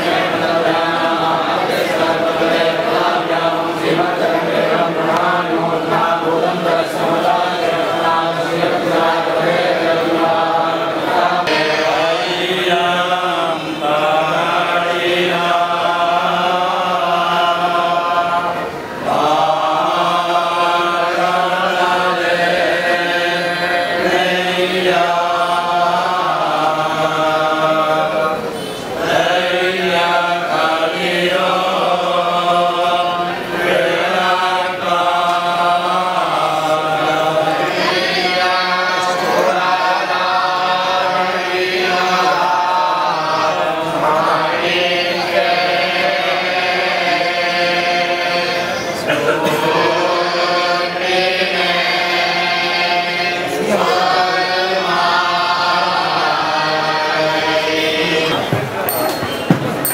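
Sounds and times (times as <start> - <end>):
men chanting in unison: 0.0 - 58.8.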